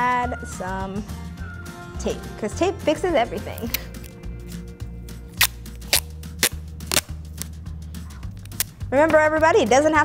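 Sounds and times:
masking tape tearing from roll: 3.6 - 4.2, 5.3 - 7.6, 8.3 - 8.8.

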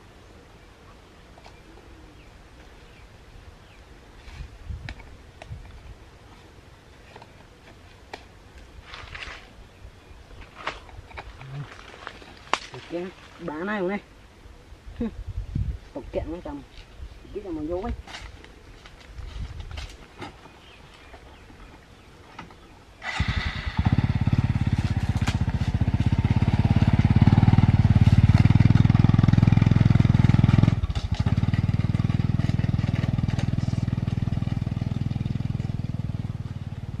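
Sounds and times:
small engine starting and running: 23.0 - 36.6.

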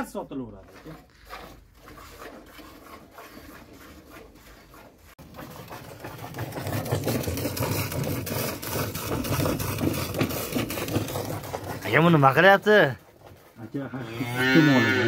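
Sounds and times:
milk squirting into metal pail: 0.6 - 13.6.

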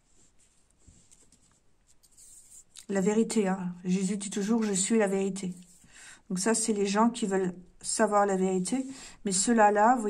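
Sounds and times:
woman speaking: 2.8 - 5.7, 6.3 - 10.0.

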